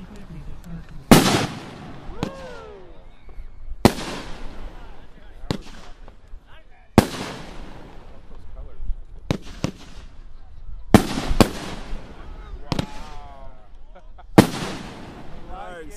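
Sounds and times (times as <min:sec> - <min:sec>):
firework bangs with crackle: 0:01.0 - 0:02.7, 0:03.3 - 0:06.3, 0:06.9 - 0:08.6, 0:09.2 - 0:10.3, 0:10.9 - 0:13.2, 0:14.3 - 0:15.6.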